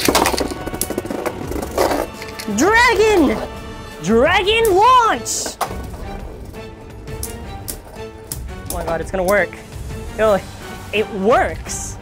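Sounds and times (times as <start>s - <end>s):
spinning tops clacking together: 0.0s - 2.5s
background music: 0.0s - 12.0s.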